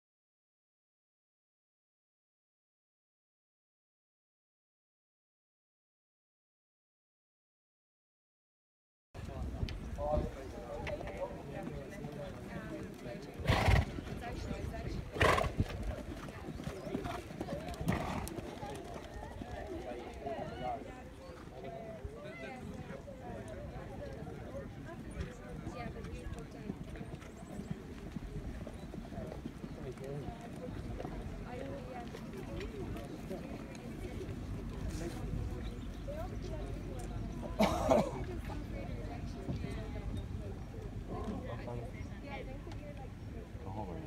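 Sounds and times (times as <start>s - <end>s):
faint voices chattering: 9.2s - 44.0s
hoofbeats on sand: 11.2s - 22.9s, 23.5s - 36.9s.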